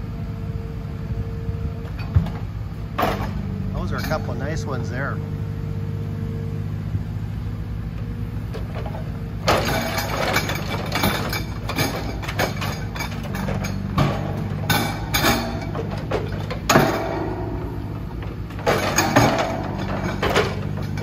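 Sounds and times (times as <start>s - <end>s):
diesel engine running: 0.0s - 21.0s
irregular knocks and clatter: 1.9s - 4.4s, 8.5s - 21.0s.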